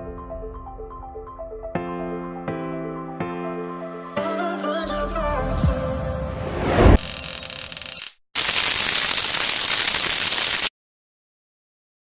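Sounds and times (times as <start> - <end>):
electric crackling: 7.0 - 10.7.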